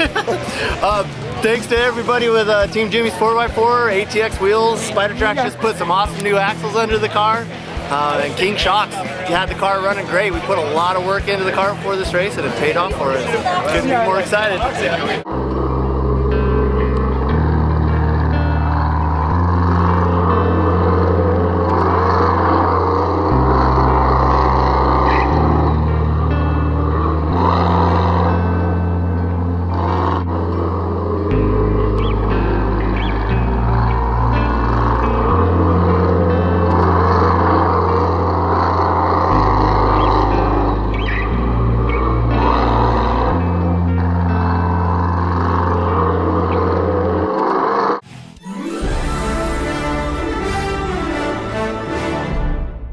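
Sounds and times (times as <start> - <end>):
background music with bass line: 0.0 - 47.1, 48.0 - 52.9.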